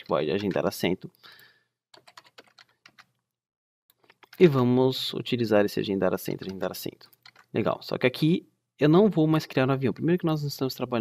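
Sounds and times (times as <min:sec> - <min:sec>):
computer keyboard keystrokes: 0:02.0 - 0:03.2, 0:06.4 - 0:07.5.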